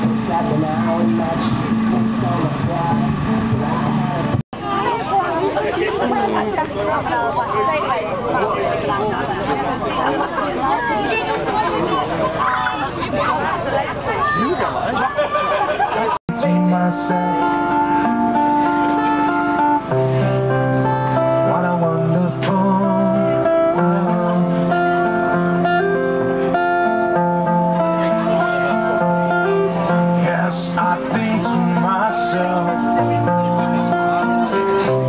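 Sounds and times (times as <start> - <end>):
acoustic guitar picked melody: 0.0 - 8.4, 16.3 - 35.0.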